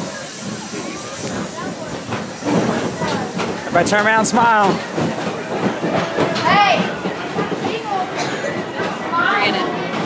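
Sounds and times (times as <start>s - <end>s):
roller coaster cars rolling on track: 0.0s - 10.0s.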